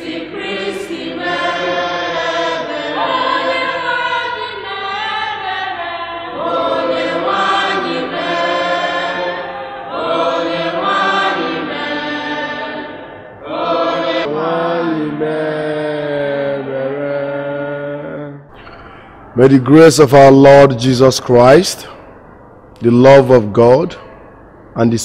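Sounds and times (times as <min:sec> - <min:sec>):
congregation singing: 0:00.0 - 0:25.0.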